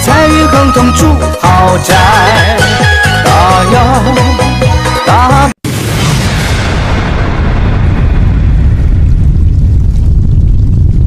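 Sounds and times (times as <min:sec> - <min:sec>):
low explosion rumble: 0:05.6 - 0:11.0.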